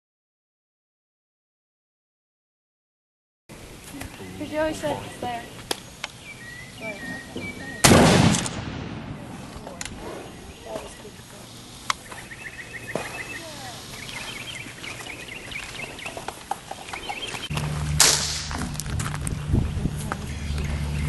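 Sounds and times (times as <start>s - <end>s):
handgun shot with echo: 7.8s - 9.2s, 18.0s - 18.6s.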